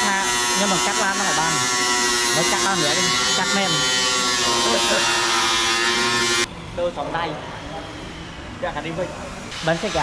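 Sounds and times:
angle grinder cutting metal: 0.0s - 6.5s.

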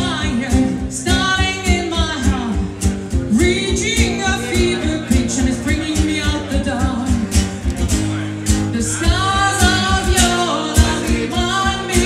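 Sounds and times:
acoustic guitar: 0.0s - 12.0s
duo singing: 0.0s - 12.0s.

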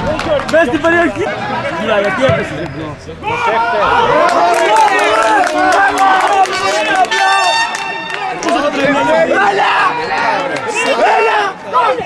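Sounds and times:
voices shouting and calling: 0.0s - 12.0s.

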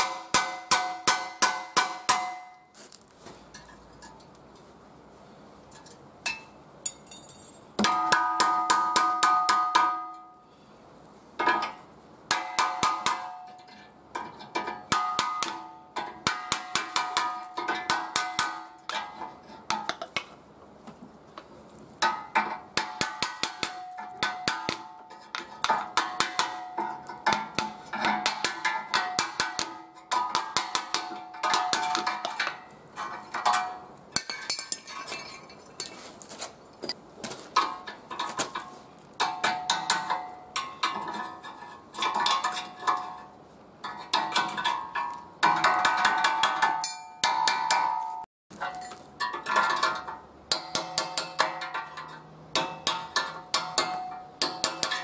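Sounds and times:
hammer striking chisel on metal: 0.0s - 2.6s, 6.3s - 10.2s, 12.3s - 13.6s, 14.6s - 20.2s, 22.0s - 32.6s, 44.1s - 55.0s.

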